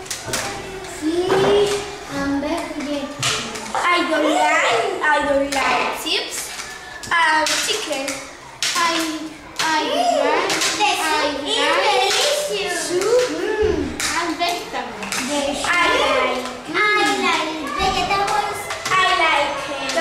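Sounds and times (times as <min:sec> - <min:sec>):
children talking and calling out: 0:00.0 - 0:20.0
sharp claps and clicks: 0:06.3 - 0:09.8, 0:10.4 - 0:11.1, 0:12.0 - 0:13.4, 0:14.0 - 0:20.0.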